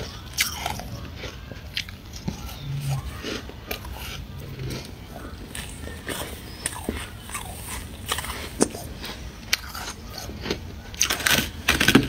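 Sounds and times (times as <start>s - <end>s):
frost being bitten and chewed: 0.0s - 12.0s.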